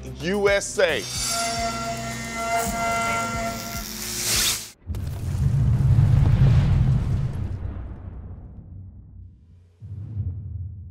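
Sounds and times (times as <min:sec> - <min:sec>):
deep booming rumble: 0:04.8 - 0:10.9.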